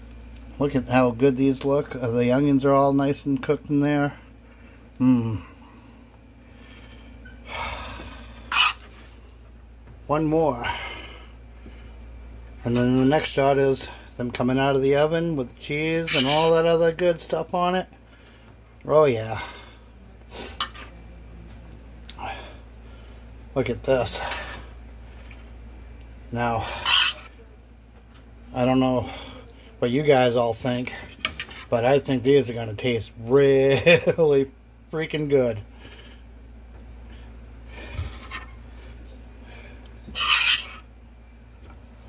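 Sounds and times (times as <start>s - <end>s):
low steady hum: 0.0s - 42.0s
spoon scraping metal pan: 26.6s - 27.3s, 40.1s - 40.9s
scraping rustle: 40.1s - 40.8s.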